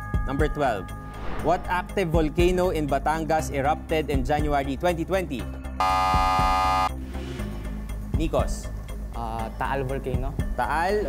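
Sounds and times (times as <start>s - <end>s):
background music: 0.0s - 11.0s
quiz show buzzer: 5.8s - 6.9s.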